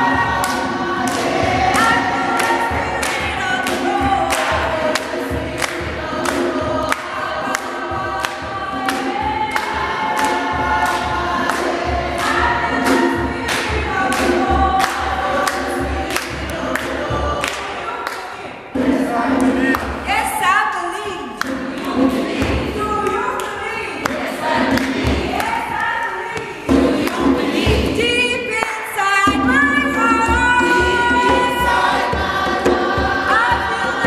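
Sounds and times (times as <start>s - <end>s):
hand-clapping to the beat: 0.0s - 20.1s, 21.3s - 28.0s
group singing gospel song: 0.0s - 20.4s, 21.2s - 34.0s.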